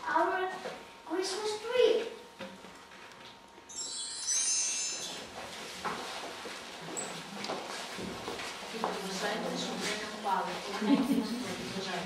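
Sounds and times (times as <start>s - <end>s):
shimmering high chimes: 3.7s - 5.4s.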